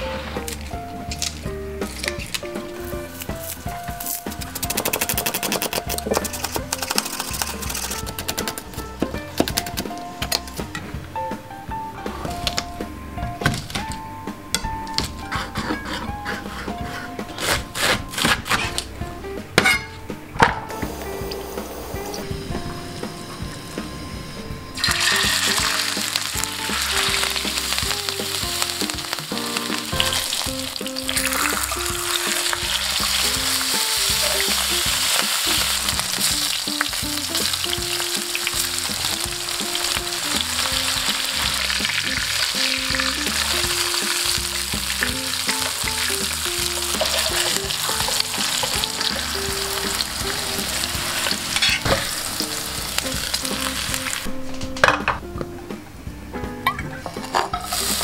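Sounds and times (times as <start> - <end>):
light background music: 0.0 - 58.0
fish sizzling in hot oil: 24.8 - 54.3, 57.6 - 58.0.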